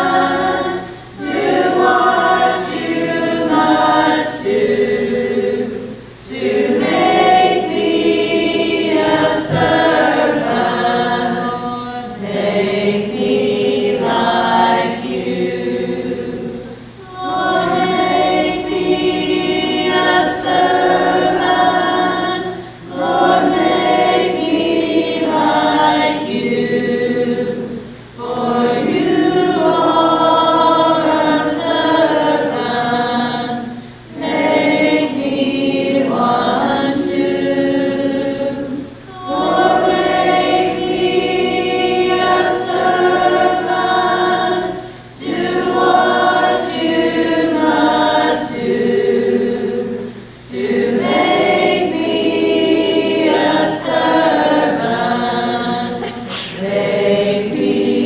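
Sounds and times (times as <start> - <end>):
women singing a hymn: 0.0 - 58.0.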